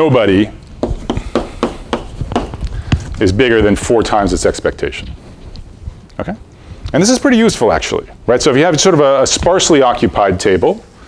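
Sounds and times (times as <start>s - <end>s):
chalk tapping and scraping on blackboard: 0.8s - 2.6s.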